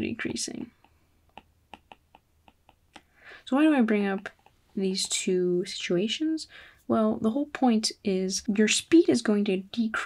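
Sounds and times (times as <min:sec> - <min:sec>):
stylus tapping on tablet screen: 0:00.2 - 0:03.0.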